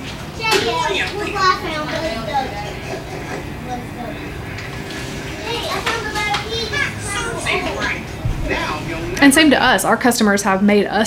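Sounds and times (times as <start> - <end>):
children chattering and calling out: 0.0 - 9.8.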